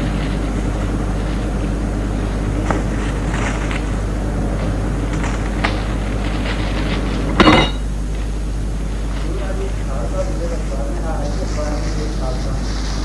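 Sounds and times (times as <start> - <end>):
electrical hum and hiss: 0.0 - 13.0.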